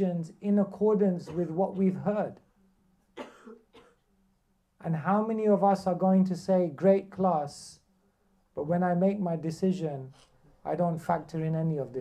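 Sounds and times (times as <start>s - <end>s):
person coughing: 1.2s - 1.8s, 3.2s - 4.0s
throat clearing: 1.2s - 1.8s, 3.2s - 4.0s.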